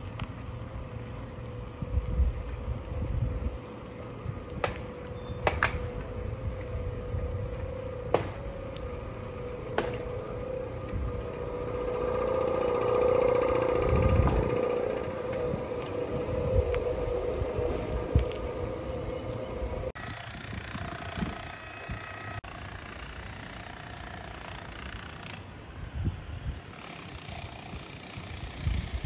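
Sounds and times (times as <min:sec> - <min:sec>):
engine humming: 0:00.0 - 0:29.0
outdoor background noise: 0:00.0 - 0:29.0.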